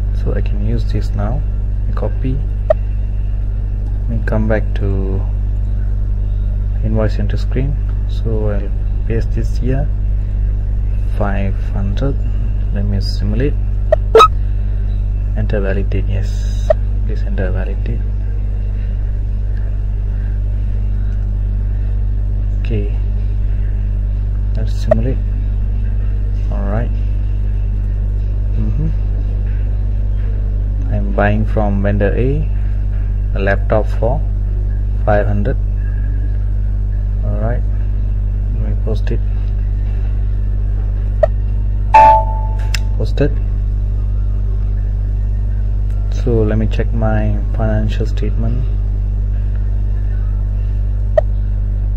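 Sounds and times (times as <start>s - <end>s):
low electrical hum: 0.0s - 51.9s
computer notification chime: 14.0s - 14.3s, 42.0s - 42.7s.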